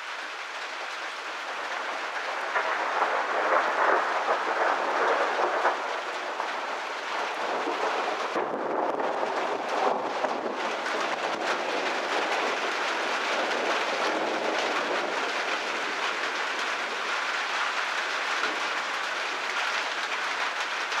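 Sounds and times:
steady rain hiss: 0:00.0 - 0:21.0.

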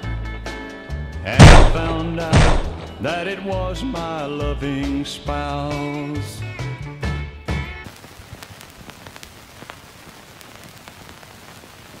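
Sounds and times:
faint hiss: 0:07.8 - 0:12.0
film crackle clicks and pops: 0:07.8 - 0:12.0.

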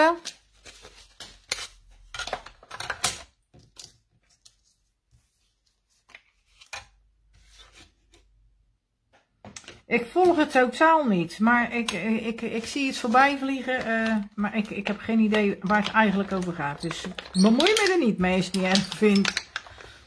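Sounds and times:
plastic plates clacking: 0:15.3 - 0:20.0.

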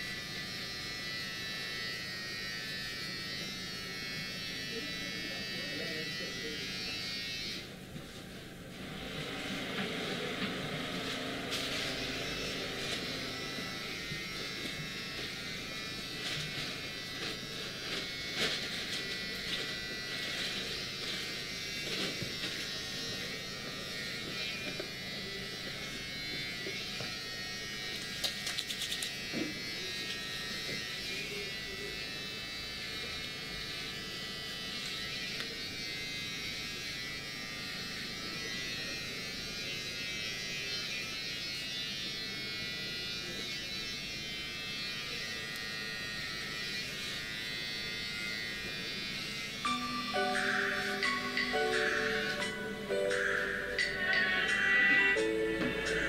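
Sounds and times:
electric buzz: 0:00.0 - 0:07.8, 0:08.6 - 0:56.0.

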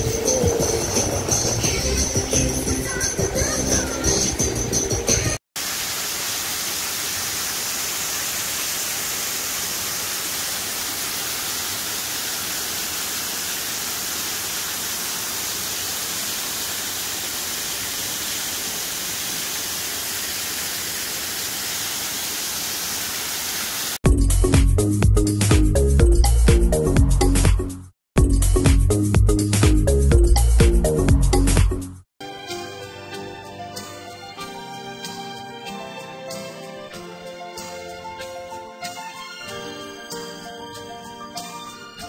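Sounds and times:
music: 0:00.0 - 0:05.4, 0:24.0 - 0:42.0
waterfall splashing into pond: 0:05.6 - 0:24.0.

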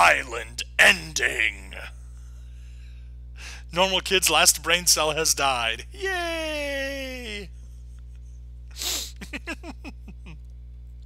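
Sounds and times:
person laughing: 0:08.8 - 0:10.4.

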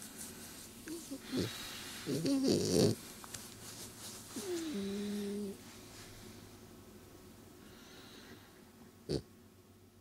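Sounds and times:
dog snorting: 0:01.1 - 0:03.0.

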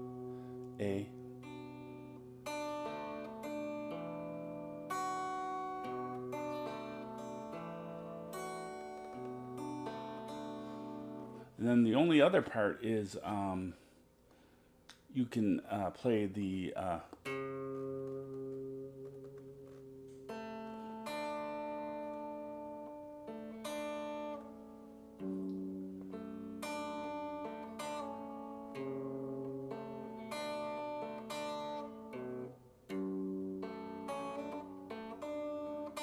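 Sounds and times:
fingerpicked electric guitar: 0:00.0 - 0:13.5, 0:16.1 - 0:36.0.

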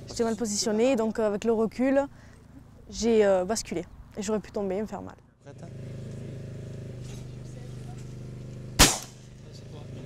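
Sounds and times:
shotgun shot: 0:08.8 - 0:09.3.

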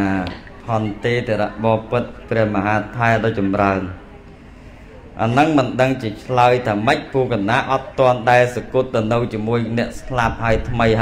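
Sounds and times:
man preaching into microphone: 0:00.0 - 0:04.0, 0:05.2 - 0:11.0.

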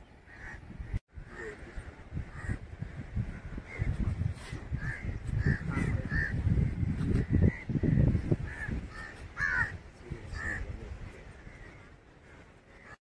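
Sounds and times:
crows cawing: 0:02.3 - 0:03.1, 0:08.4 - 0:10.7.

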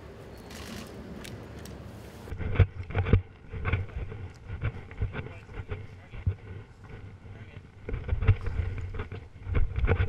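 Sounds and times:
camera rubbing and knocking: 0:01.6 - 0:10.0
dull irregular thumps: 0:02.3 - 0:10.0.

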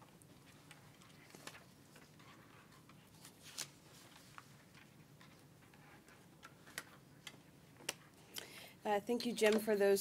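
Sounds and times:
faint clicks and taps: 0:04.1 - 0:08.5.

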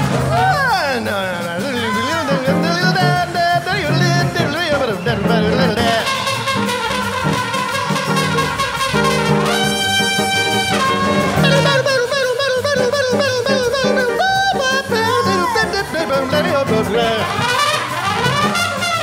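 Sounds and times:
guitar: 0:00.0 - 0:19.0
upright bass: 0:00.0 - 0:19.0
trumpet solo: 0:01.8 - 0:19.0.

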